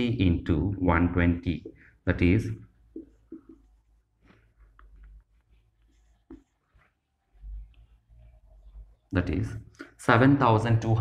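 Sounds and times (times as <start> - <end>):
marker writing on whiteboard: 1.4 - 10.0.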